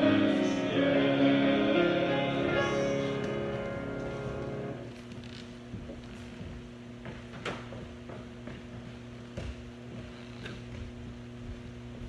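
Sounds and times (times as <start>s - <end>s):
low electrical hum: 0.0s - 12.0s
footsteps on wooden platform: 4.0s - 12.0s.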